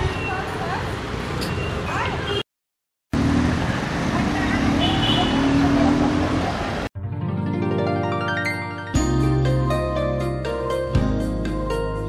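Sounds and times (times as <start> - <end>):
distant traffic rumble: 3.1 - 6.9
voices: 4.0 - 6.8.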